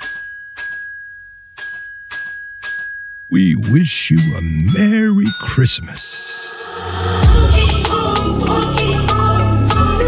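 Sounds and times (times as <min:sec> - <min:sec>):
bell-like chime notes: 0:00.0 - 0:07.3
steady high ringing tone: 0:00.0 - 0:08.0.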